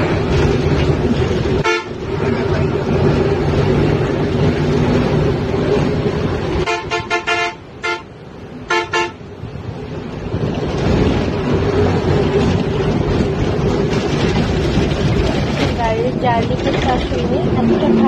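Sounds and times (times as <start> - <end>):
bus engine and road noise: 0.0 - 18.0
vehicle horn tooting: 1.6 - 1.9, 6.6 - 8.1, 8.7 - 9.2.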